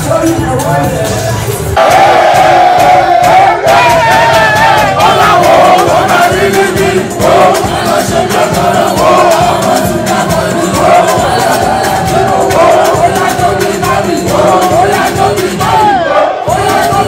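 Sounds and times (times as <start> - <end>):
music with a steady beat: 0.0 - 17.0
men chanting in unison: 1.8 - 17.0.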